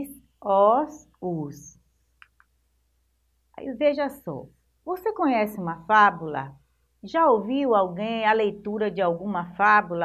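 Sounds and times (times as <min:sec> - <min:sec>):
woman speaking: 0:00.0 - 0:01.8, 0:03.6 - 0:10.0.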